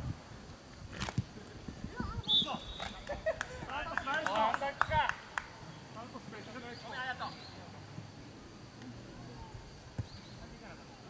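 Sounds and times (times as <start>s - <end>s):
short high whistle: 2.2s - 3.0s.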